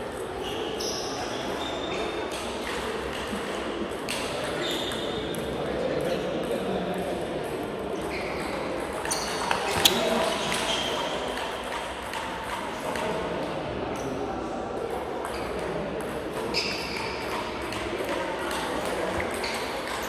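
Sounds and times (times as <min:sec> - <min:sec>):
murmur of voices: 0:00.0 - 0:20.0.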